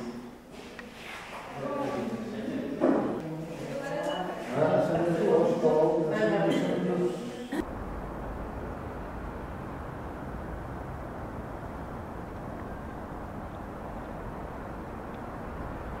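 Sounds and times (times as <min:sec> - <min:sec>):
outdoor background rumble: 0:07.6 - 0:16.0.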